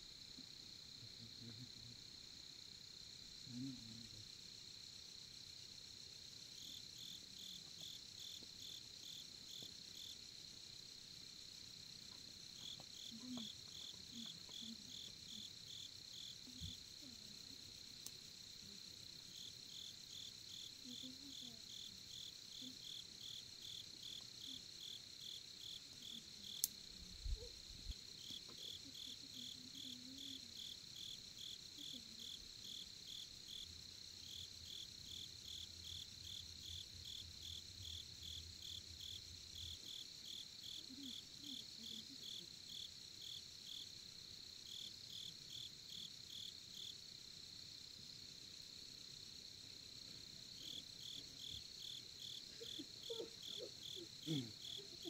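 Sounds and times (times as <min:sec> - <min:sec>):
crickets chirping: 0:00.0 - 0:55.0.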